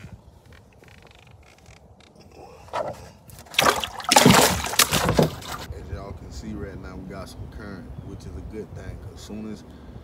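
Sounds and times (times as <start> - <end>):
fish splashing in water: 3.4 - 5.7.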